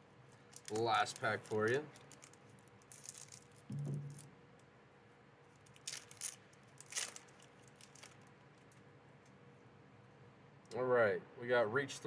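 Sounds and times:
foil wrapper crinkling: 0.5s - 4.2s, 5.5s - 8.8s
scissors cutting foil wrapper: 5.7s - 8.2s.

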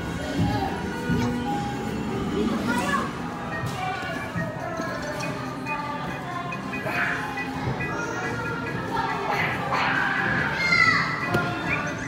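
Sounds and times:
background music: 0.0s - 12.0s
children playing and calling out: 0.2s - 12.0s
child's high voice: 10.4s - 11.2s.

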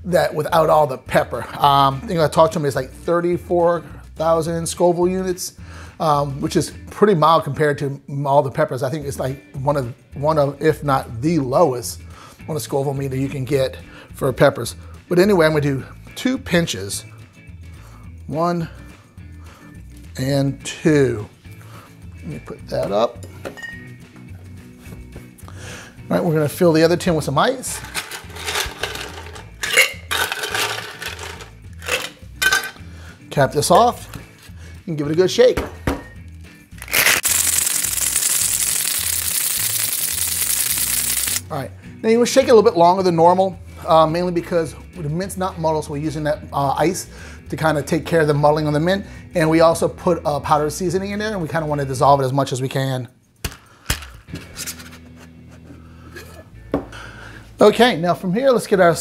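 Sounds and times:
ice cubes clattering into metal tin: 27.7s - 32.8s, 36.9s - 41.4s.

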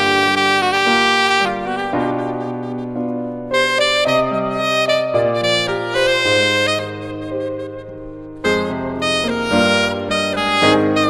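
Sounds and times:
piano accompaniment: 0.0s - 11.0s
saxophone melody: 0.0s - 11.0s.

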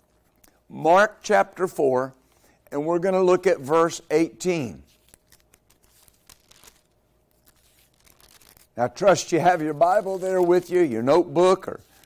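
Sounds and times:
thin pages rustling: 4.9s - 11.0s.

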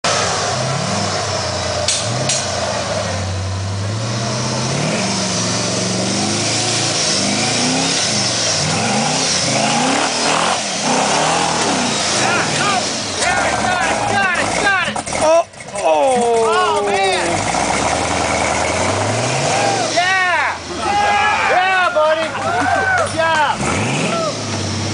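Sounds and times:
engine revving under load: 0.0s - 24.9s
people shouting: 12.1s - 14.9s, 19.4s - 23.4s, 24.0s - 24.5s.

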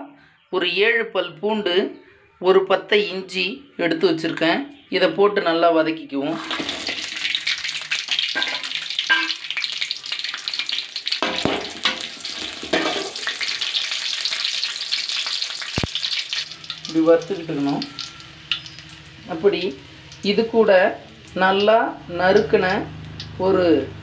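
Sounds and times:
chillies and garlic frying in oil: 6.3s - 24.0s.

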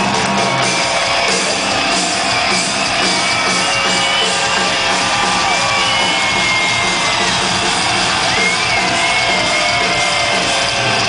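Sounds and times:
heavy metal band playing live: 0.0s - 11.0s.

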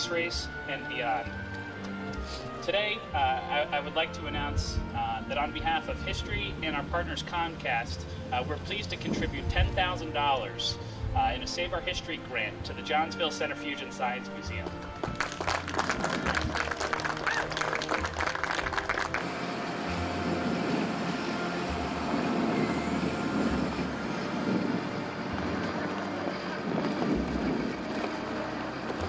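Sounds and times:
low engine rumble: 2.4s - 29.0s
crowd applauding: 15.0s - 19.4s.

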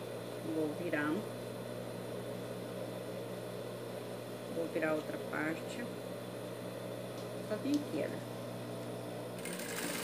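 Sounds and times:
sewing machine motor humming: 9.4s - 10.0s
sewing machine needle stitching: 9.4s - 10.0s.

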